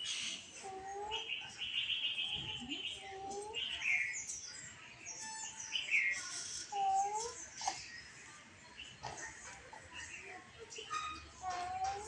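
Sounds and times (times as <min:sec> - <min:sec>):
high-pitched bird chirping: 0:00.0 - 0:09.2.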